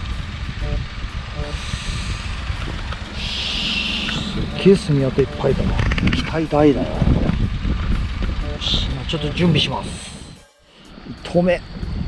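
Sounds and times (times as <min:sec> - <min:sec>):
handling rumble on microphone: 0:00.2 - 0:04.7.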